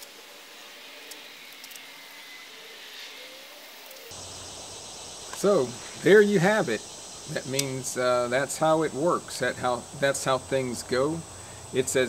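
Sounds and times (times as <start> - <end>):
faint wavering hum: 0.0 - 12.0
outdoor hiss: 0.0 - 12.0.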